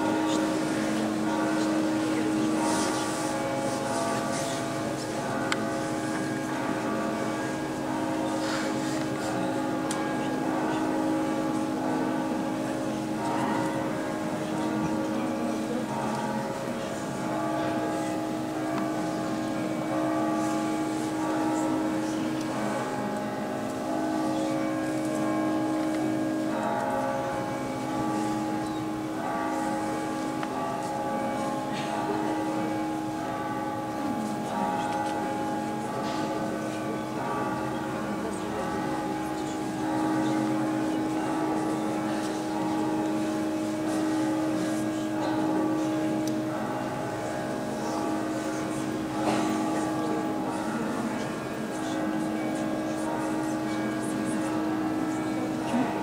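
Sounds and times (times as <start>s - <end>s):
crowd knocks and shuffles: 0.0s - 56.0s.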